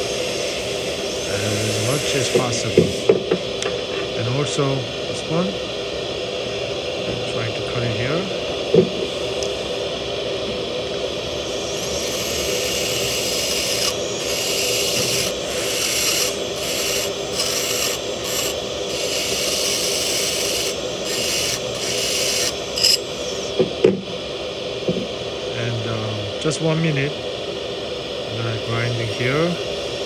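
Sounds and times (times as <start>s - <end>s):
bur grinding metal hiss: 0.0s - 3.3s, 11.4s - 23.6s
dental handpiece motor whine: 0.0s - 30.0s.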